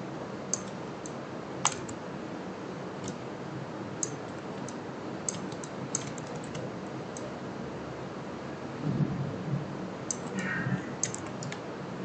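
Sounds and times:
steady background hiss: 0.0 - 12.0
mouse and keyboard clicks: 0.5 - 2.0, 3.0 - 3.2, 4.0 - 7.3, 10.1 - 10.4, 11.0 - 11.6.

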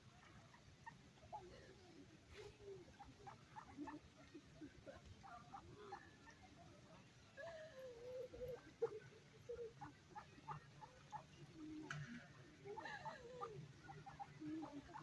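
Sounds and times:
ducks quacking: 2.8 - 7.0, 8.2 - 11.6, 12.2 - 15.0.

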